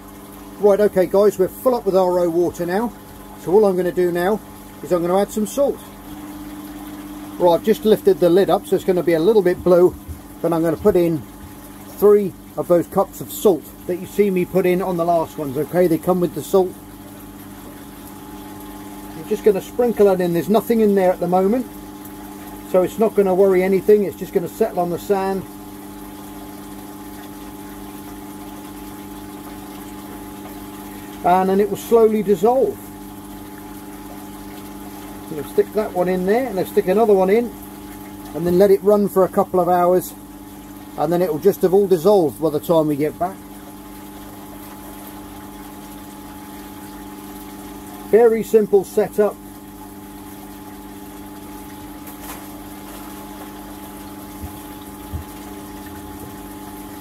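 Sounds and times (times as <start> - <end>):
aquarium pump humming: 0.0 - 57.0
circulating water: 0.0 - 57.0
faint low thumps: 9.5 - 11.6.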